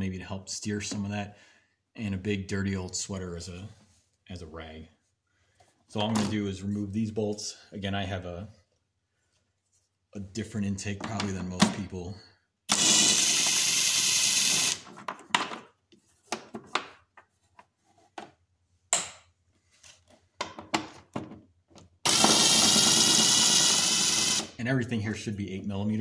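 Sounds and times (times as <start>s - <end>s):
tool handling clicks and knocks: 14.8s - 19.4s, 20.0s - 22.0s
power driver spinning bolts: 22.1s - 24.5s.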